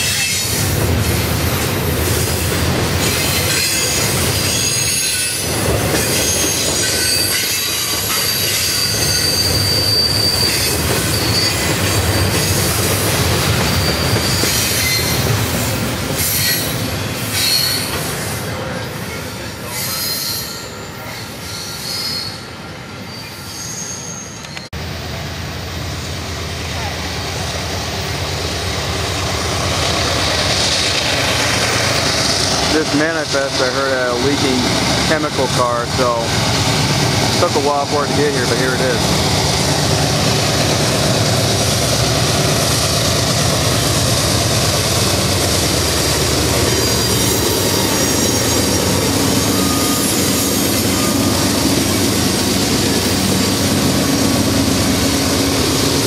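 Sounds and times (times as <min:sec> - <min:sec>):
diesel locomotive engine: 0:00.0 - 0:56.0
high-pitched wheel squeal: 0:03.1 - 0:05.4, 0:06.0 - 0:12.8, 0:13.6 - 0:15.3, 0:16.2 - 0:18.0, 0:19.6 - 0:24.7, 0:46.6 - 0:51.6.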